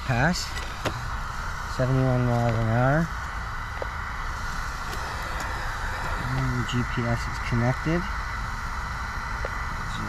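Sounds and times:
low rumble: 0.0 - 10.0
outdoor background hiss: 0.0 - 10.0.

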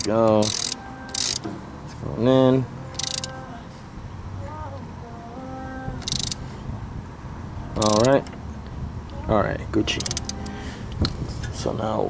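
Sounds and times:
socket ratchet clicking: 0.0 - 1.5, 2.9 - 3.4, 6.0 - 6.4, 7.8 - 8.2, 9.9 - 11.1.

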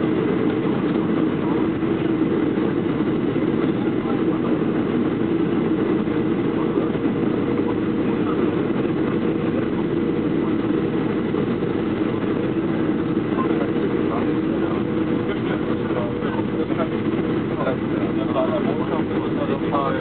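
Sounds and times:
jet engines: 0.0 - 20.0.

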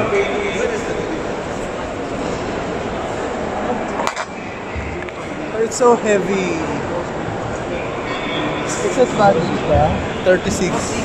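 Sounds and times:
blur of voices: 0.0 - 11.0
machinery and air-handling hum: 0.0 - 11.0.

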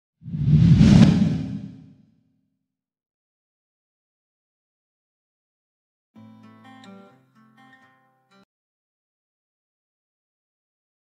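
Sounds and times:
whoosh with deep rumble: 0.2 - 1.9.

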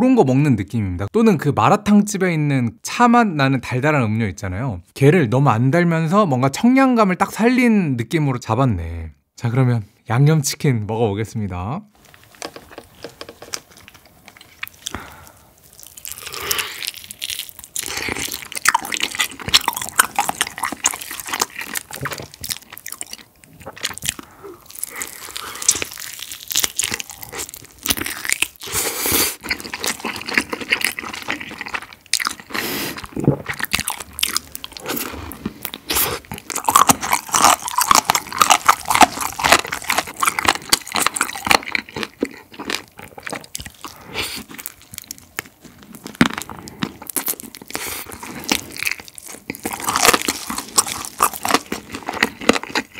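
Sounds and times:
fried chicken crunching: 12.0 - 52.9
wet chewing: 12.0 - 52.9.

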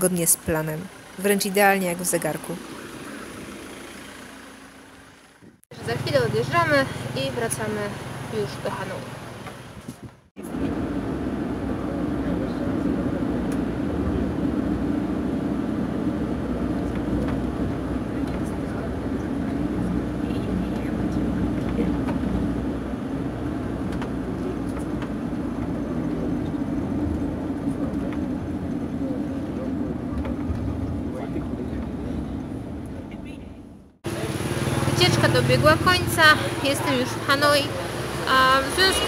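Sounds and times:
minibus engine rumble: 0.0 - 39.0
road noise inside vehicle: 0.0 - 39.0.

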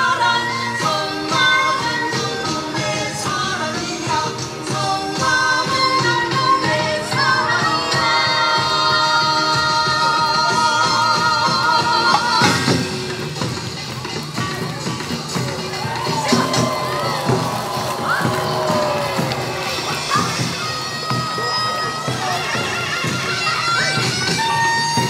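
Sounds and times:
crowd cheering and shouting: 0.0 - 25.0
traditional folk music with percussion: 0.0 - 25.0.

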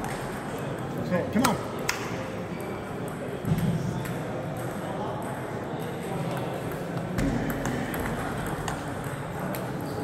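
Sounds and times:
ping-pong balls ticking: 0.0 - 3.4, 4.0 - 10.0.

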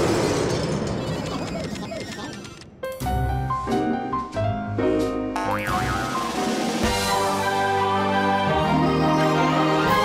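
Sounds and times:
springy boing: 5.4 - 6.4
cartoon music: 5.4 - 7.5.

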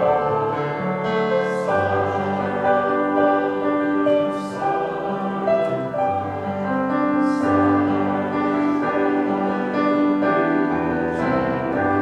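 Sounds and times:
church choir singing: 0.0 - 12.0.

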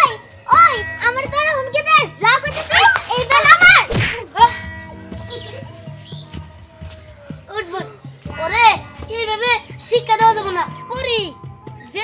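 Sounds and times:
children's voices: 0.0 - 12.0
quiet music: 0.0 - 12.0.

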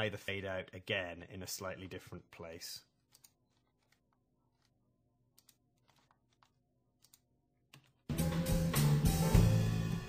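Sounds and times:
computer mouse and keyboard clicks: 3.0 - 8.1.

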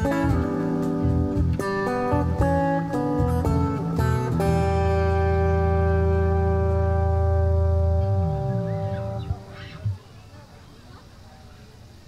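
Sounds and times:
electric guitar chord ringing: 0.0 - 10.0
low sliding notes: 3.6 - 10.0.

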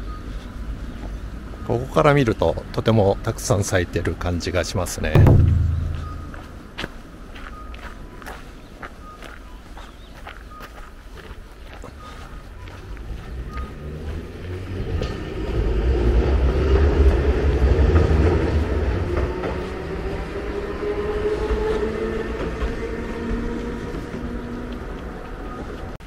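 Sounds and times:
heavy vehicle rumble passing: 5.2 - 6.6, 12.8 - 24.9.

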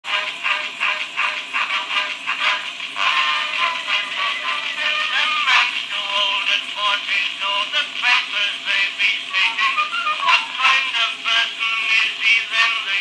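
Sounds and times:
phonograph instrumental music: 0.0 - 13.0
faint hiss: 0.1 - 13.0.

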